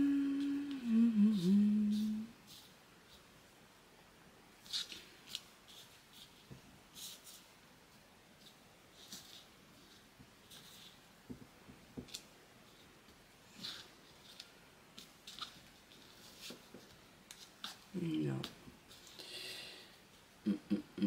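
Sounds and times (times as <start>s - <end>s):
woman humming: 0.0s - 2.4s, 20.4s - 21.0s.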